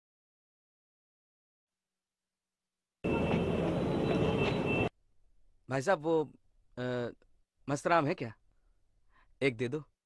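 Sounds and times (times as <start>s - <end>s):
traffic noise: 3.0s - 5.0s.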